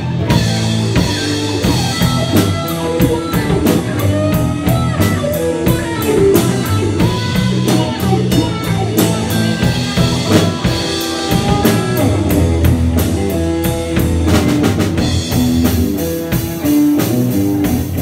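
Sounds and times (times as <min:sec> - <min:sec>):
bass guitar: 0:00.0 - 0:18.0
drum kit steady beat: 0:00.0 - 0:18.0
electric guitars: 0:00.0 - 0:18.0.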